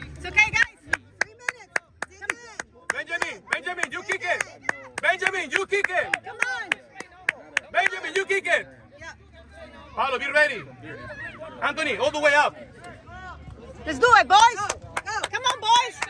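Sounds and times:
rapid rhythmic clapping: 0:00.0 - 0:08.2, 0:14.4 - 0:16.0.

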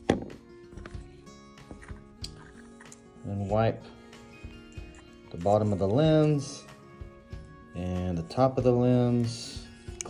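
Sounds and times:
background music with held tones: 0:00.0 - 0:10.0.

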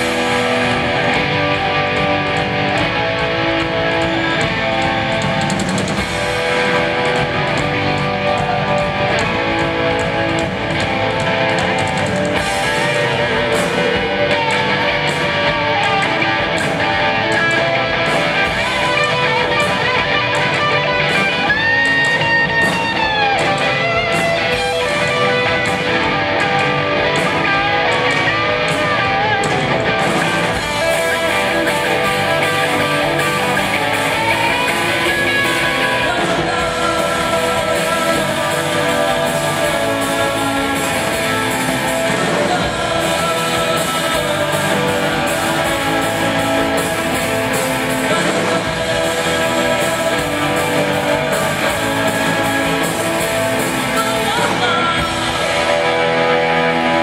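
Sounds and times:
drums and cymbals: 0:00.0 - 0:57.0
electric guitar: 0:00.0 - 0:57.0.

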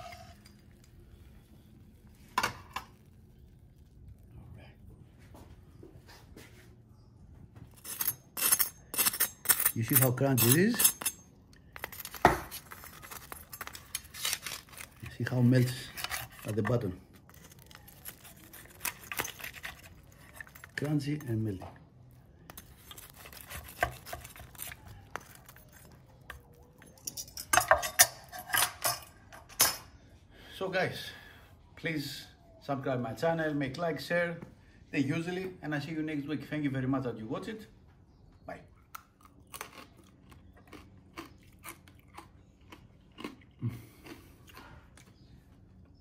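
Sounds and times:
knife crunching through crackling: 0:07.7 - 0:21.4, 0:22.5 - 0:28.8
metal tongs and knife clinking: 0:07.8 - 0:14.9, 0:26.8 - 0:29.9.

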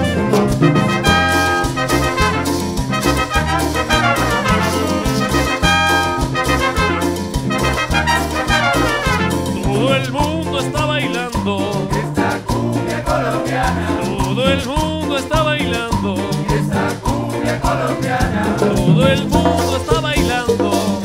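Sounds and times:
trumpets and trombone riffs: 0:00.0 - 0:09.8
bass drums and hand percussion: 0:00.0 - 0:21.0
person singing: 0:03.9 - 0:06.2, 0:09.4 - 0:21.0.

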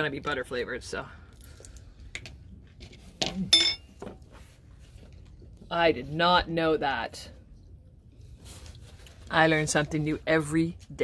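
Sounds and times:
ringing clink of hard objects: 0:03.5 - 0:03.9.

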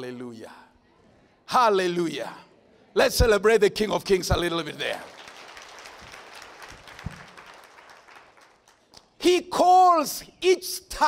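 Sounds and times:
congregation applauding: 0:04.6 - 0:09.0.

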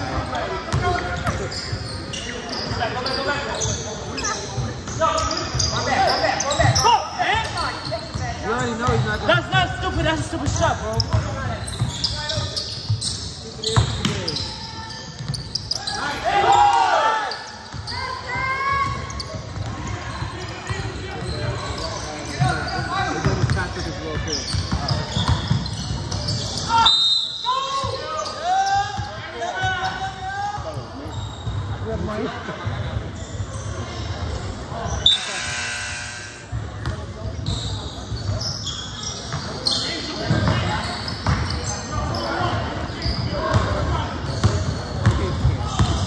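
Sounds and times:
players shouting: 0:15.7 - 0:19.1.

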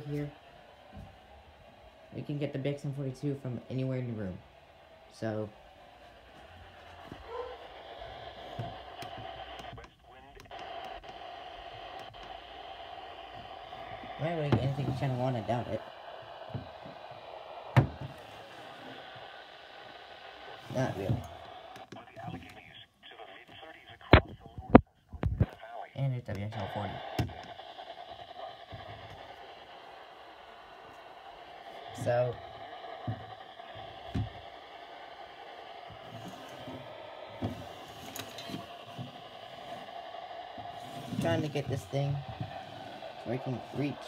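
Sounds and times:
radio static hiss: 0:00.0 - 0:44.0
steady hum: 0:00.0 - 0:44.0.

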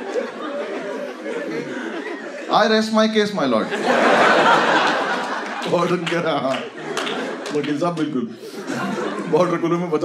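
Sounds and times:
audience laughing: 0:00.0 - 0:10.0.

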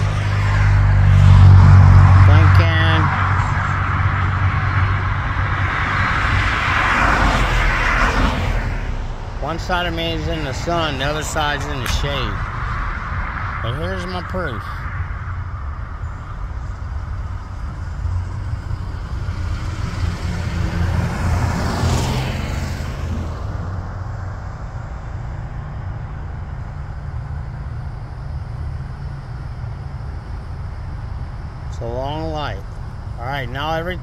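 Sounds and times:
roadside traffic rumble: 0:00.0 - 0:34.0
vehicle passing: 0:00.0 - 0:34.0.

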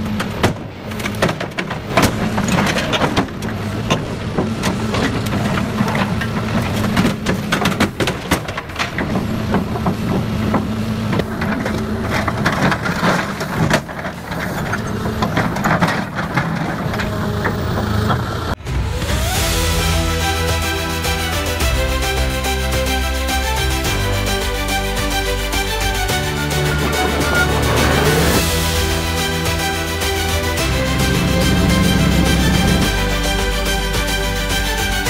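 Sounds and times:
heavy machine engine running: 0:00.0 - 0:35.0
hydraulic shear cutting metal: 0:00.0 - 0:35.0.

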